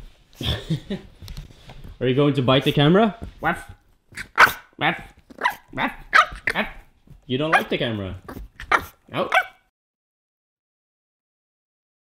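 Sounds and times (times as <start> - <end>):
puppy barking: 3.4 - 6.8, 7.5 - 7.7, 8.3 - 9.7.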